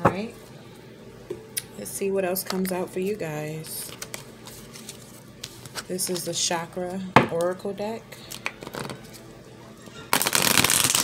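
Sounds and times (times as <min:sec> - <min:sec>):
cards riffling: 0:08.3 - 0:09.2, 0:10.1 - 0:11.0.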